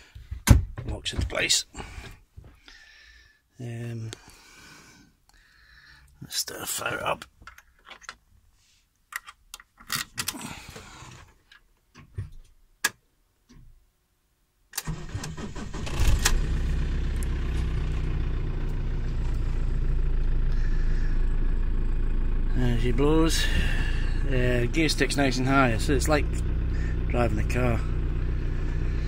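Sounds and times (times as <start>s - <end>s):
starter motor cranking: 14.8s - 18.0s
diesel engine idling: 14.8s - 29.0s.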